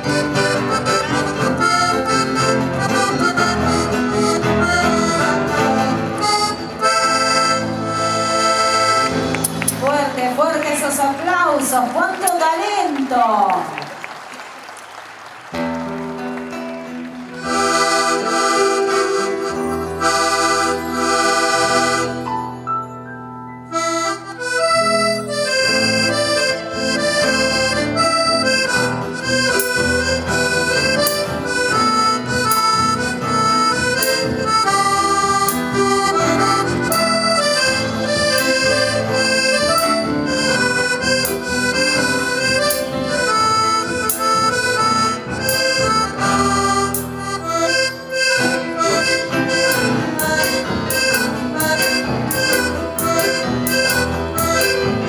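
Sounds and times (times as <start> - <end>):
strummed acoustic guitar: 0.0 - 9.6
accordion playing lively tune: 0.0 - 13.0, 15.5 - 55.0.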